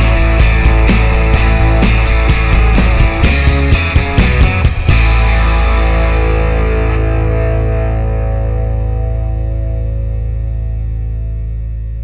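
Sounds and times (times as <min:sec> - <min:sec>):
deep sustained bass note: 0:00.0 - 0:12.0
distorted electric guitar chord: 0:00.0 - 0:12.0.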